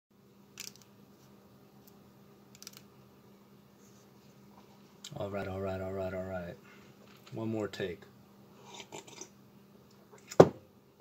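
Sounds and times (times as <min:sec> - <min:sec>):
faint steady hum: 0:00.1 - 0:11.0.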